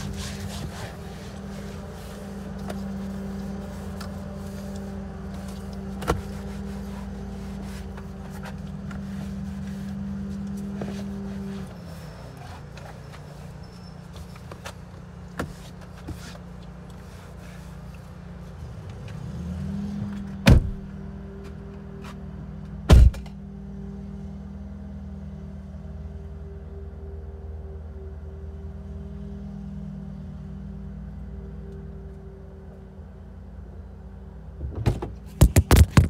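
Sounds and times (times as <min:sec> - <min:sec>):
motor vehicle rumble: 0:00.0 - 0:36.0
phone handling knocks and scrapes: 0:34.9 - 0:36.0.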